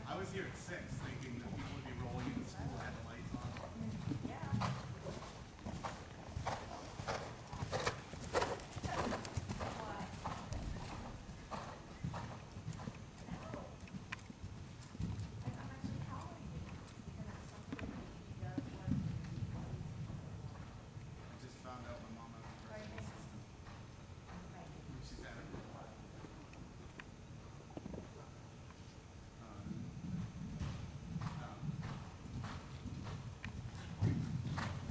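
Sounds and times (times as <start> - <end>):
horse hoofbeats on sand: 0.8 - 21.4, 30.0 - 34.9.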